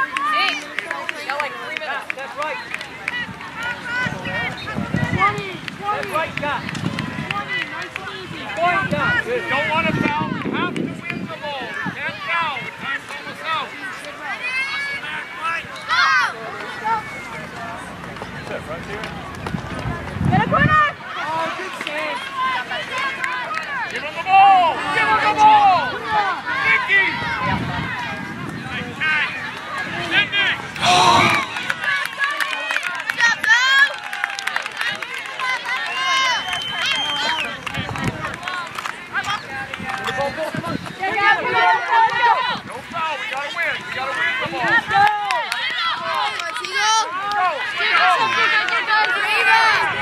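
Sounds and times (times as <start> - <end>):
distant shouts of players: 20.6 - 34.4.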